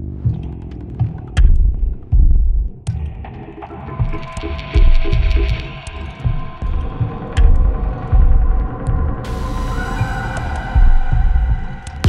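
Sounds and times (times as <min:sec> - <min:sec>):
deep low pulses: 0:04.0 - 0:12.0
sustained droning chord: 0:09.3 - 0:12.0.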